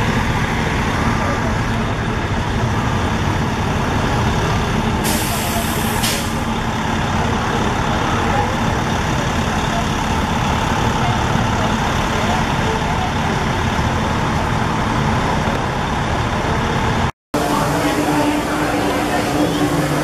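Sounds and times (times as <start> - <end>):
street traffic: 0.0 - 20.0
sharp hiss of air: 5.0 - 6.5.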